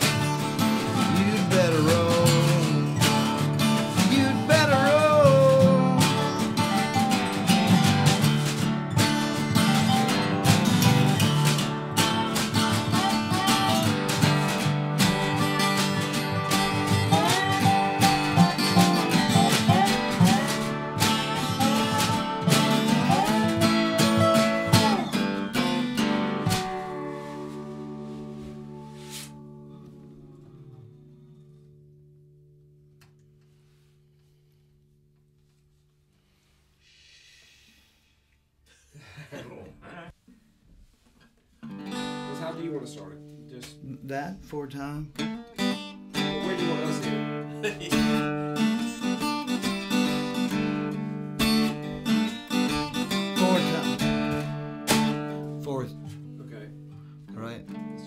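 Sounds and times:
slide dobro gliding: 0.0s - 32.3s
strummed acoustic guitar: 0.0s - 36.6s, 41.6s - 58.0s.

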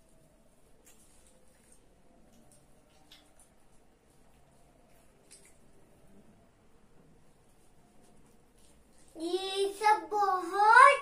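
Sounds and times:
girl's sing-song voice: 9.1s - 11.0s.

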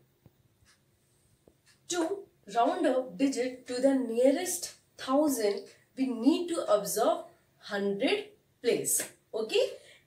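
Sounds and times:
woman's voice: 1.9s - 9.9s.

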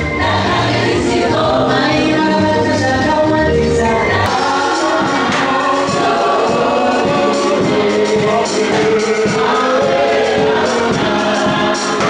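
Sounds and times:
gospel choir singing with music: 0.0s - 12.0s.

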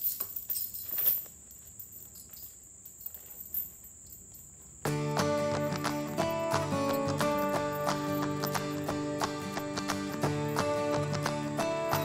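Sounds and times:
insects buzzing: 1.4s - 12.0s.

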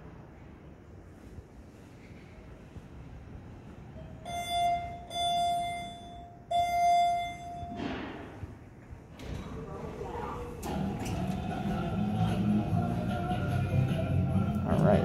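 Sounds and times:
elevator arrival chime: 3.9s - 7.8s
elevator doors opening: 3.9s - 14.6s.

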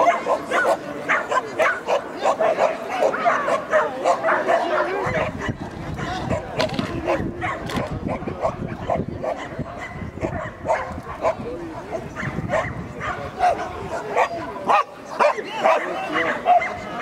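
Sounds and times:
dog barking rapidly: 0.0s - 16.8s
people's voices: 0.0s - 17.0s.

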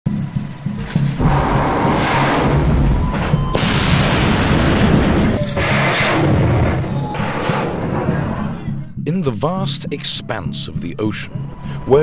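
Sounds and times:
background music: 0.1s - 12.0s
missile rocket motor rushing: 0.9s - 6.9s.

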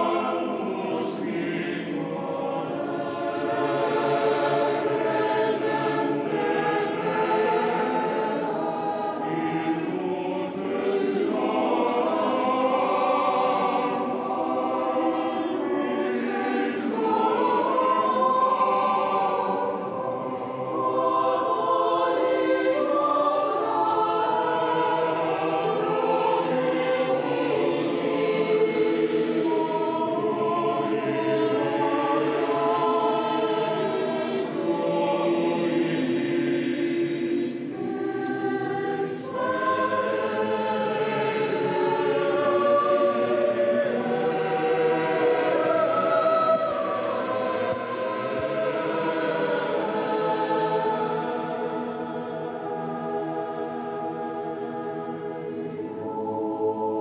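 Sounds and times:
choir singing sacred music: 0.0s - 57.0s.

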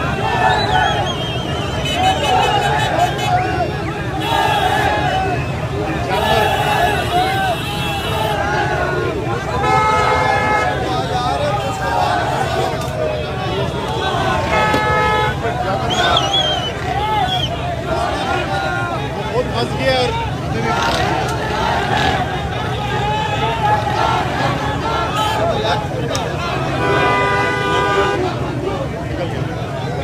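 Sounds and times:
large crowd shouting: 0.0s - 30.0s
vehicle horn blast: 6.2s - 8.4s, 9.6s - 10.8s, 14.5s - 15.4s, 26.8s - 28.2s.

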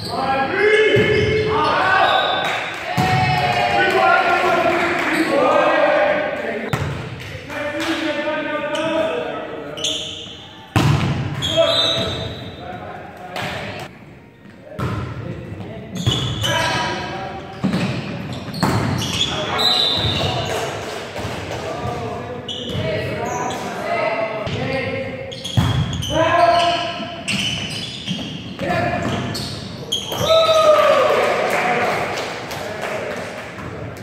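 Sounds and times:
players shouting and cheering: 0.2s - 6.7s, 30.1s - 32.1s.

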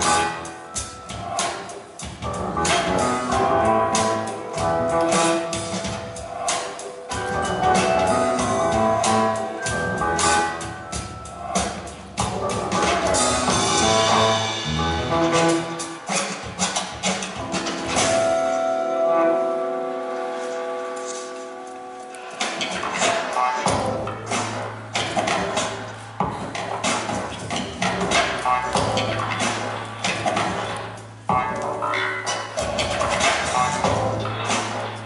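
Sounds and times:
dance music: 0.0s - 35.0s.

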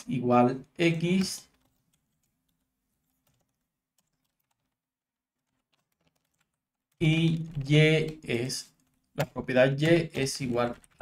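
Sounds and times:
keyboard keystrokes: 3.2s - 4.8s, 5.4s - 11.0s.

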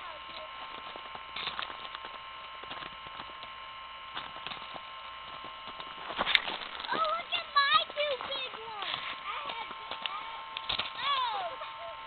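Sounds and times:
electrical hum: 0.0s - 12.0s
faint high whining tones: 0.0s - 12.0s.

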